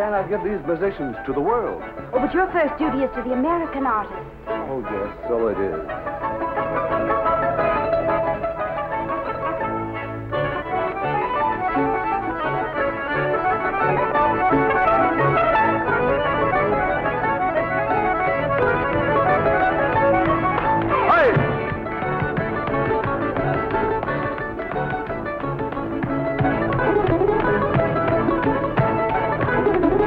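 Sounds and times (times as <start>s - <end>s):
small band playing instrumental: 0.0s - 30.0s.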